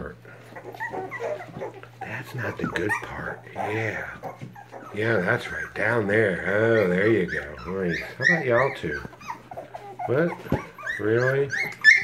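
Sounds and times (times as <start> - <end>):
puppies whimpering: 0.0 - 12.0.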